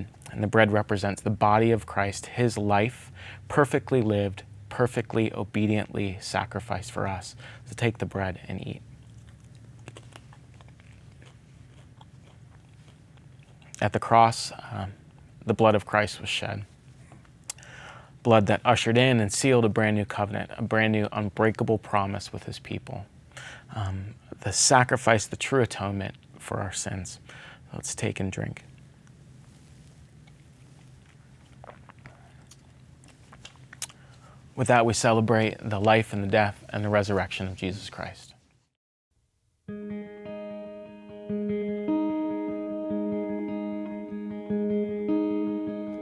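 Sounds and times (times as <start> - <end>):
low steady hum: 0.0 - 38.6
man chewing wafer: 8.8 - 13.8, 28.8 - 34.5.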